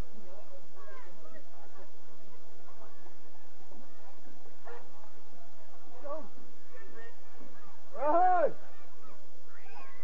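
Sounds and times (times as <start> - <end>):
crowd chatter and calls: 0.0 - 10.0
person shouting: 8.0 - 8.6.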